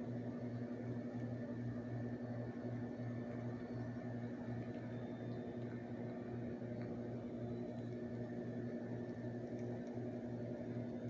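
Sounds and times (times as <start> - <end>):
pulsing electrical hum: 0.0 - 11.0.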